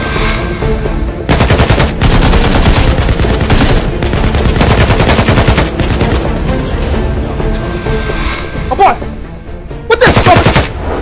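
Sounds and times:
automatic gunfire bursts: 1.3 - 6.1.

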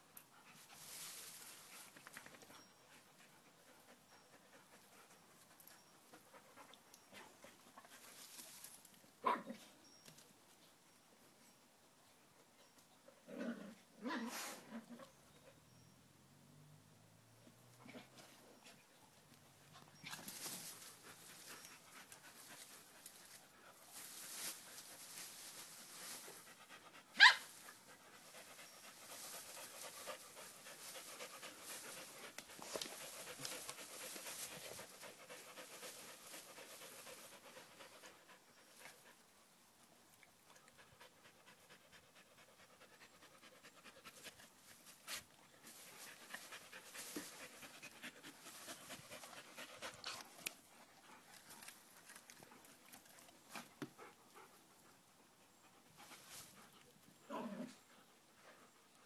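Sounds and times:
leaves rustling: 0.6 - 2.3, 7.9 - 9.1, 20.0 - 37.6, 44.6 - 50.3
dog yelping: 27.2 - 27.5
dog panting: 27.8 - 39.3, 45.9 - 56.9.

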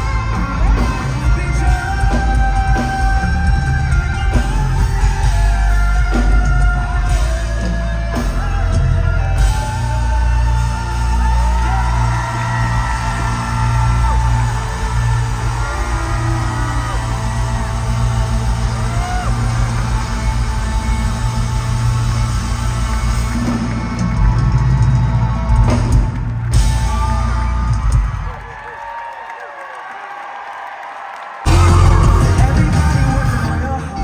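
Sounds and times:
live pop-rock band: 0.0 - 28.7, 31.5 - 34.0.

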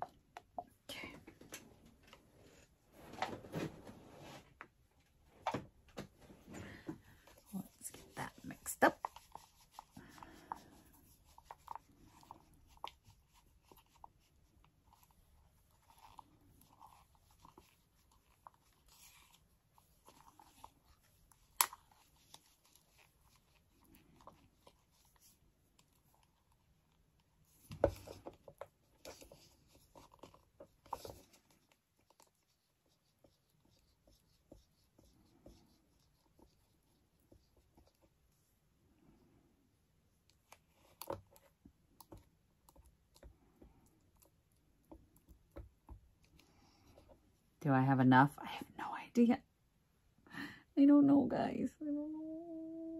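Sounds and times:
stick stirring resin in plastic cup: 7.1 - 38.4, 40.1 - 47.5.

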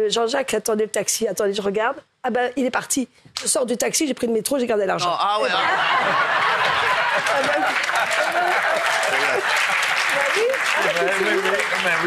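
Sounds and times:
audience applauding: 5.9 - 12.0.

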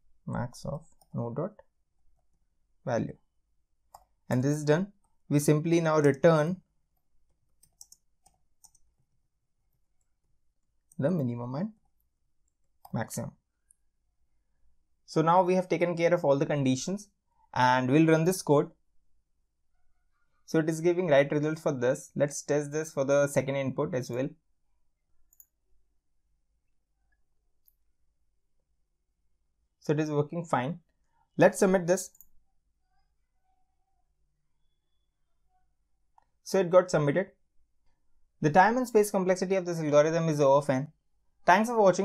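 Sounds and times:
faint computer mouse click: 25.3 - 25.6.

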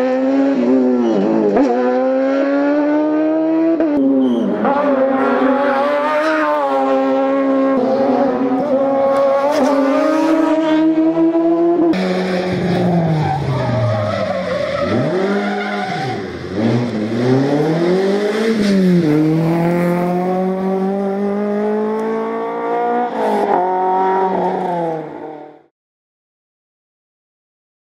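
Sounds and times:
rally car engine revving: 0.0 - 25.7.

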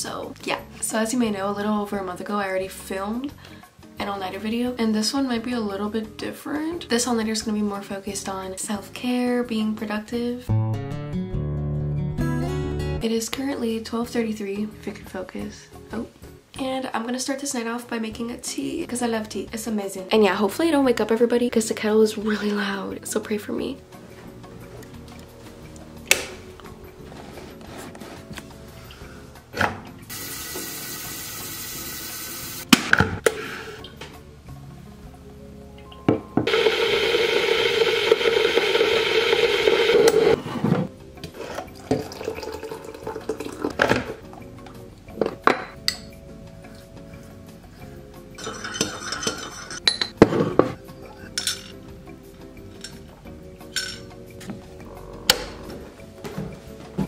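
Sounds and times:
faint background music: 0.0 - 38.8, 39.5 - 57.0
water pouring from kettle: 41.6 - 44.2
ceramic mug and utensils clinking: 48.4 - 51.8, 53.7 - 54.1.

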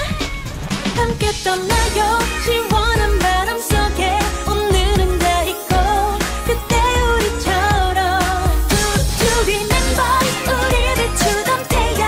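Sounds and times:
pop song with singing and band: 0.0 - 12.0.

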